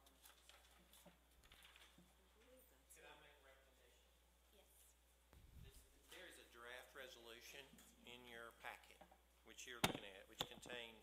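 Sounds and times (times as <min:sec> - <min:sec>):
papers rustling: 0:00.0 - 0:02.2.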